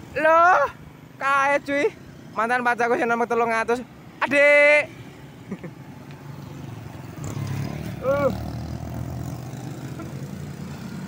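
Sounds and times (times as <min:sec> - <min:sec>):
motorbikes and car passing: 0:00.0 - 0:11.0.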